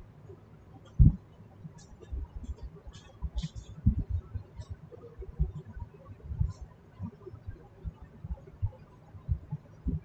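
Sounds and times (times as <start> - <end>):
low dull thumps: 1.0 - 1.2, 2.1 - 4.3.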